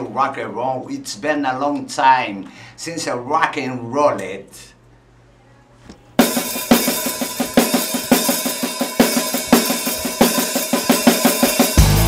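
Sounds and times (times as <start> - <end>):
loud steady drum hits: 6.2 - 12.0
rock band playing: 6.2 - 12.0.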